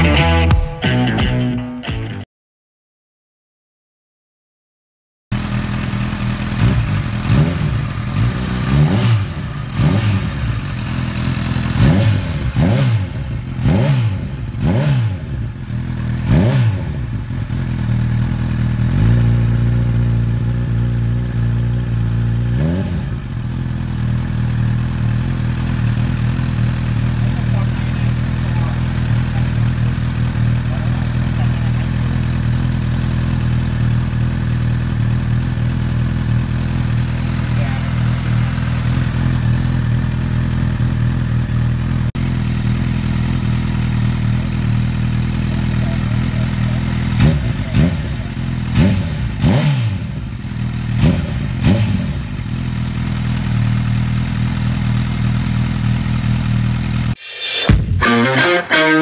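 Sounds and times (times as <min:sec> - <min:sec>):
motorcycle engine revving: 0:05.3 - 0:59.0
motorcycle engine idling: 0:05.4 - 0:57.2.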